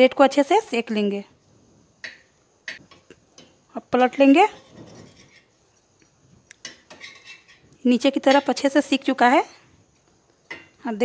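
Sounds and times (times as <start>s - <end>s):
metal spatula clicking and scraping: 4.2s - 8.5s.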